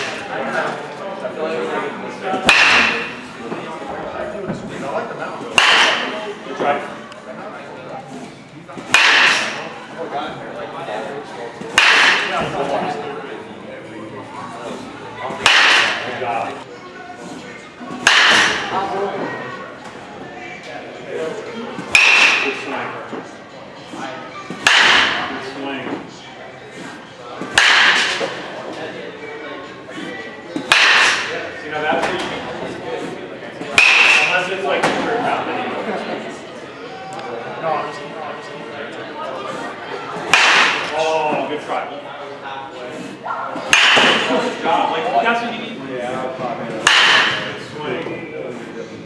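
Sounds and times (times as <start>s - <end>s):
baseball bat cracking ball: 2.4s - 3.3s, 5.5s - 6.2s, 8.8s - 9.6s, 11.7s - 12.6s, 15.3s - 16.2s, 17.9s - 18.8s, 21.8s - 22.7s, 24.5s - 25.4s, 27.4s - 28.5s, 30.6s - 31.4s, 33.7s - 35.1s, 40.3s - 41.0s, 43.7s - 44.4s, 46.8s - 47.6s.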